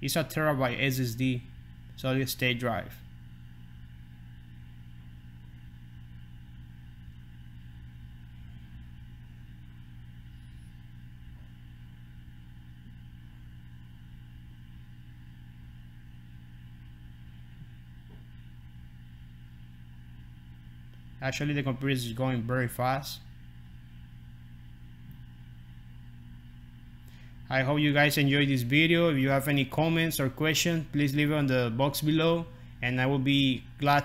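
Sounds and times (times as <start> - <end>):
room hum with low tones: 0.0 - 34.0.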